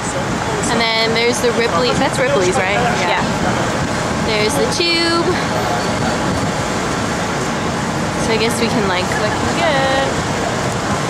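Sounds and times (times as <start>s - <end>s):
busy city street traffic: 0.0s - 11.0s.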